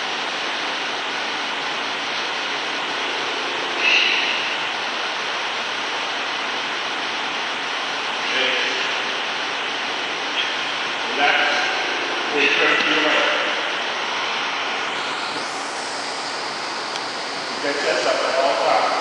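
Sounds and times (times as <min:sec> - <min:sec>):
electric fan rushing air: 0:00.0 - 0:19.0.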